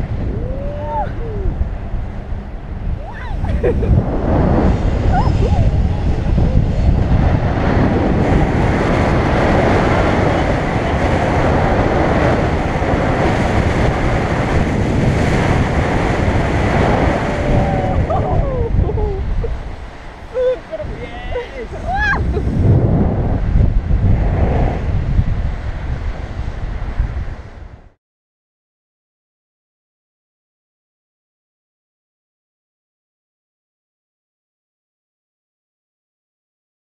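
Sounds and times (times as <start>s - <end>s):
wind rushing on microphone: 0.0s - 28.0s.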